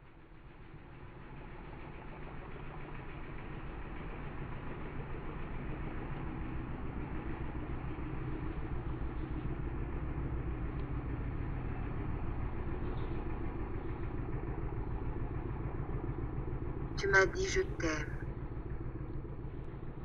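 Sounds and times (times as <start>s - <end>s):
low machine drone: 0.2s - 20.0s.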